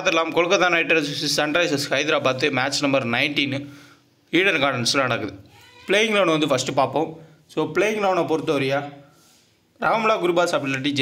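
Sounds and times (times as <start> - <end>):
man speaking: 0.0 - 3.7, 4.3 - 9.1, 9.8 - 11.0.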